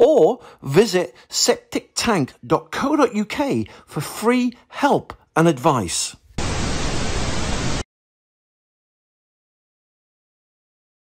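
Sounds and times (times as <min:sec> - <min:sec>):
television static hiss: 0:06.4 - 0:07.8.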